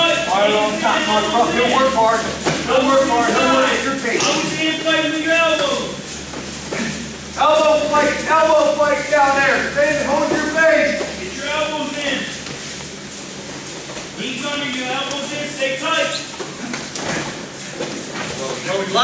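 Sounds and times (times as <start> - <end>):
man shouting in echoing room: 0.0 - 6.0, 7.4 - 12.3.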